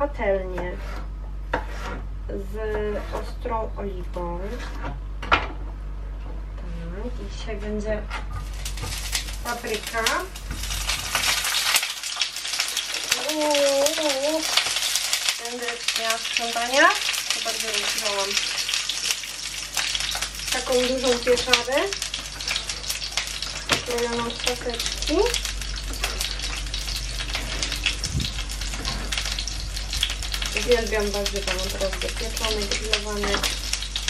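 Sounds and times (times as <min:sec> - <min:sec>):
pepper sizzling in oil: 0:08.4 - 0:34.0.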